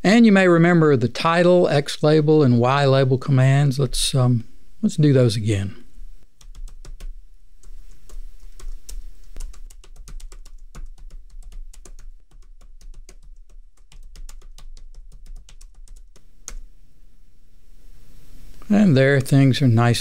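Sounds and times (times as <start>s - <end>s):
typing on a computer keyboard: 6.4s - 16.6s.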